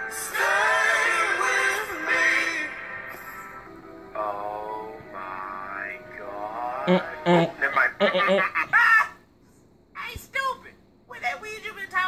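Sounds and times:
person singing with music: 0:00.0 - 0:07.9.

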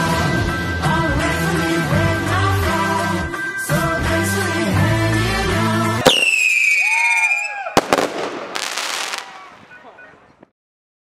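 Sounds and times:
music: 0:00.0 - 0:06.4
firework pops: 0:06.0 - 0:06.6, 0:07.8 - 0:09.5
firework whistle falling in pitch: 0:06.0 - 0:09.6
firework burst: 0:06.0 - 0:09.7.

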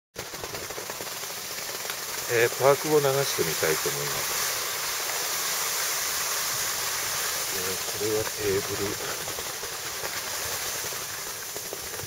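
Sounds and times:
skis sliding over packed snow: 0:00.2 - 0:12.0.

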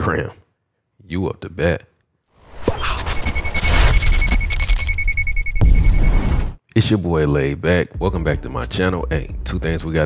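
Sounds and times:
steady high beep: 0:02.9 - 0:06.6.

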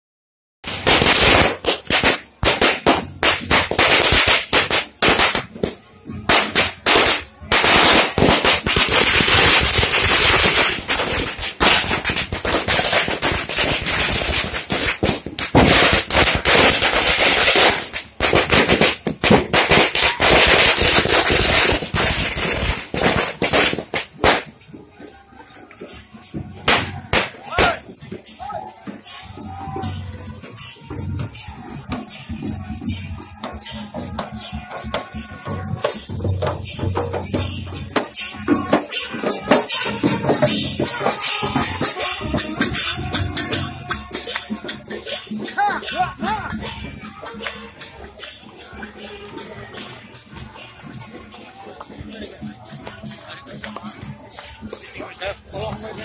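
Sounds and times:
firecrackers cracking and banging: 0:00.6 - 0:56.0.

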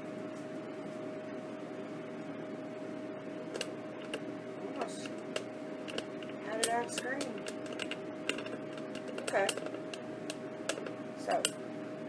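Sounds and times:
food dehydrator humming: 0:00.0 - 0:12.0
sharp clicks: 0:04.8 - 0:11.6.

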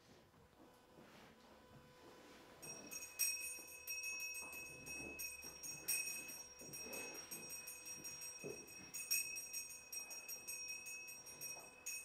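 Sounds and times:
altar bells jangling: 0:02.6 - 0:12.0.

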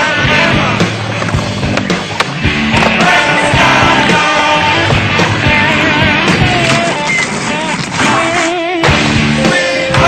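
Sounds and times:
rock music: 0:00.0 - 0:10.0
skateboard rolling on concrete: 0:00.0 - 0:10.0
skateboard clacks: 0:00.9 - 0:05.6.

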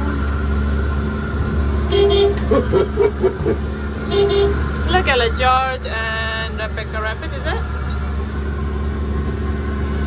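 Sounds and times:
steady low hum: 0:00.0 - 0:10.0
toy car horn honking: 0:01.9 - 0:02.9, 0:04.1 - 0:04.6.

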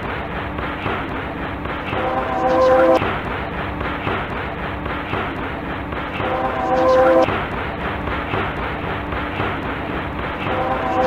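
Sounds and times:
sustained horn-like tone: 0:01.9 - 0:03.0, 0:06.2 - 0:07.3, 0:10.4 - 0:11.0.

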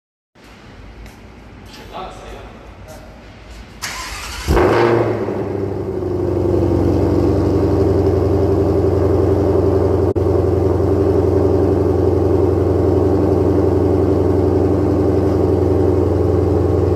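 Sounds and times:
engine cranking: 0:03.8 - 0:04.6.

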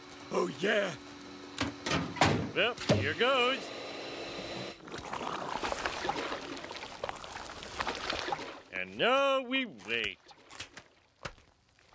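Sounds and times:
steady hum: 0:00.0 - 0:04.9
grease gurgling through hose: 0:04.8 - 0:08.7.

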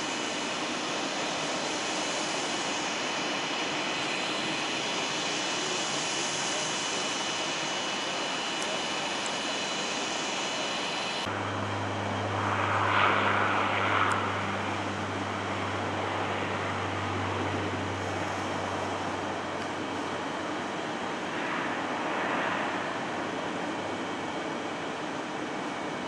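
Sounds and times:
jet engines rushing: 0:00.0 - 0:26.0
low hum: 0:11.1 - 0:24.3.

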